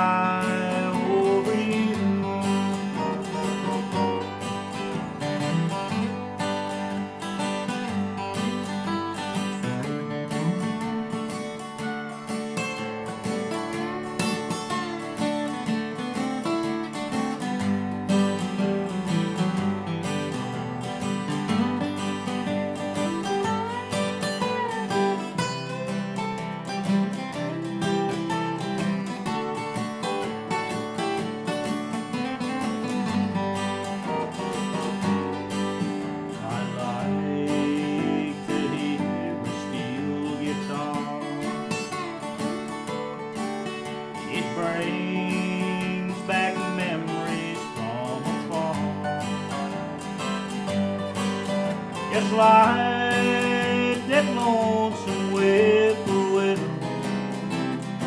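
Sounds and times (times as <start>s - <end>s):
picked acoustic guitar melody: 0.0s - 58.0s
strummed acoustic guitar chords: 0.0s - 58.0s.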